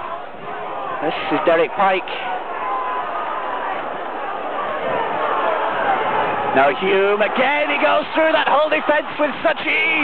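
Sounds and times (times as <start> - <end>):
stadium crowd shouting: 0.0 - 10.0.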